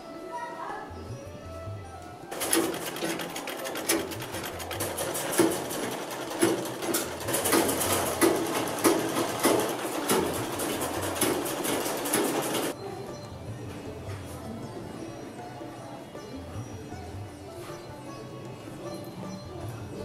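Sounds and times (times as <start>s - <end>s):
sewing machine needle clatter: 2.3s - 12.8s
treadle knocking: 2.3s - 12.8s.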